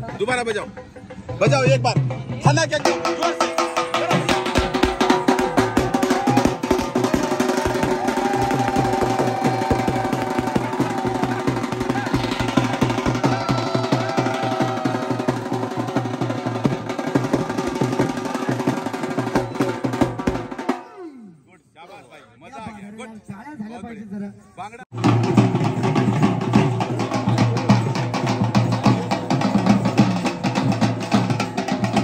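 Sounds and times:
drummers playing fast beat: 0.0s - 20.9s, 24.9s - 32.0s.

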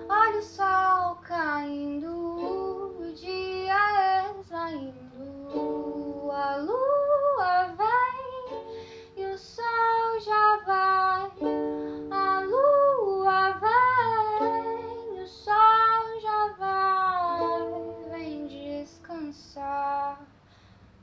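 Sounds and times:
plucked strings: 0.0s - 20.2s
woman singing: 0.0s - 20.3s.

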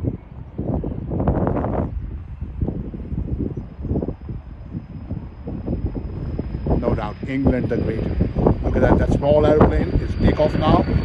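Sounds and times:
gusty wind buffeting microphone: 0.0s - 11.0s.

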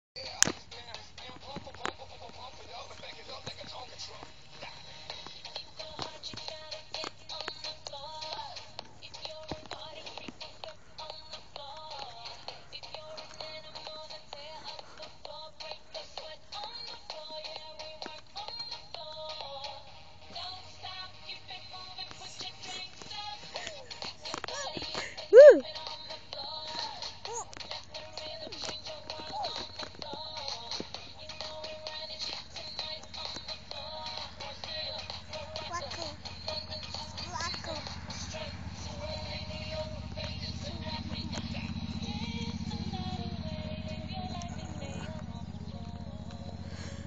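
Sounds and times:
faint music with singing: 0.2s - 47.0s.

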